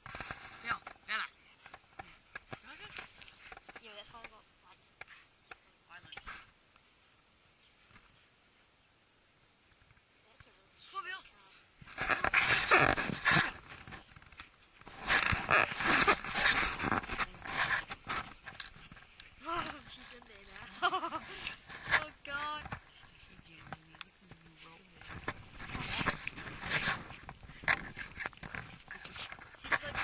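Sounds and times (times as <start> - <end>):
dog digging in soil and grass: 11.9 - 30.0.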